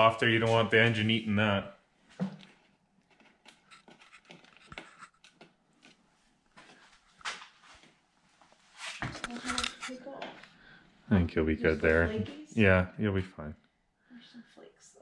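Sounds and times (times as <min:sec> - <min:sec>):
foil seal crinkling and peeling: 0:03.1 - 0:06.0.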